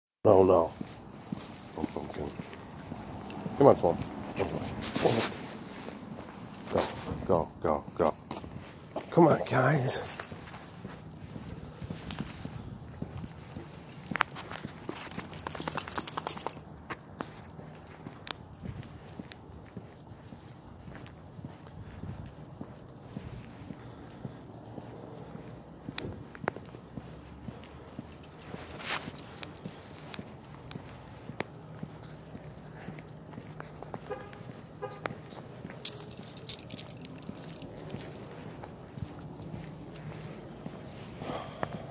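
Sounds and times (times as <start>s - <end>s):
footsteps on brick paving: 0.2s - 41.9s
dog paws clicking on bricks: 0.3s - 41.9s
dog claws clicking on concrete: 11.3s - 19.4s, 35.3s - 40.2s.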